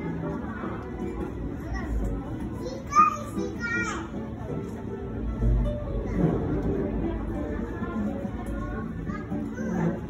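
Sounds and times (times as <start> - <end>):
background music: 0.0 - 10.0
crowd voices: 0.0 - 10.0.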